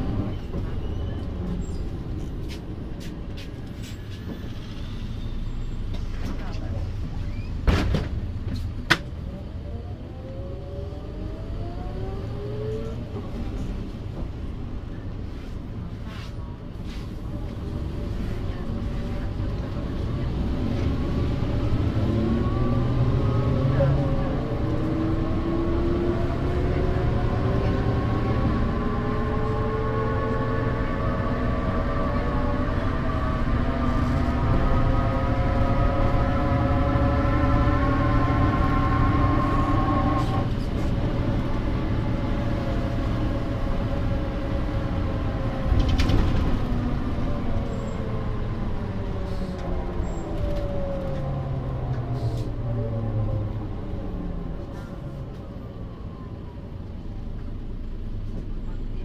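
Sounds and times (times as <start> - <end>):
bus drivetrain whine: 0.0 - 59.0
diesel engine rumble: 0.0 - 59.0.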